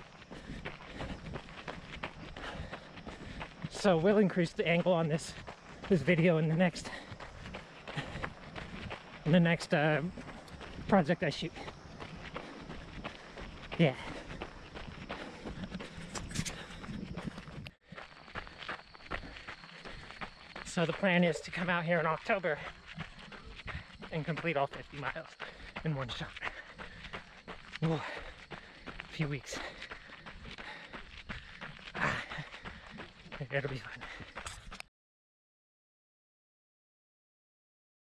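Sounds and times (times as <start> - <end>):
running footsteps on gravel: 0.0 - 34.9.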